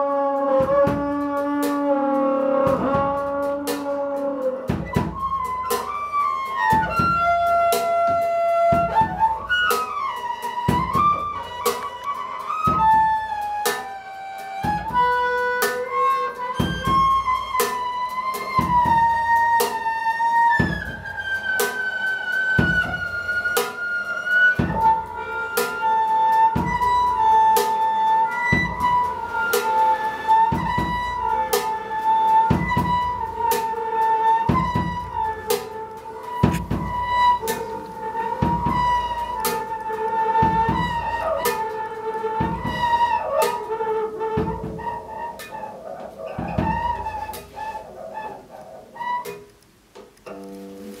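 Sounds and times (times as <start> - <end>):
bowed double bass: 0.0 - 13.7, 14.5 - 49.6, 50.2 - 51.0
bowed double bass note sliding: 34.6 - 49.6.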